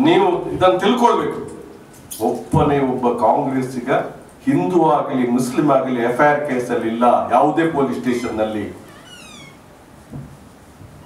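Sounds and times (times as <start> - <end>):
high-pitched squeak sliding down: 8.8 - 9.6.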